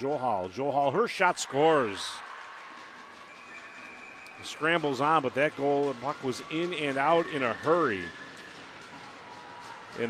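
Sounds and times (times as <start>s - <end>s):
crowd and rink sound: 0.0s - 10.0s.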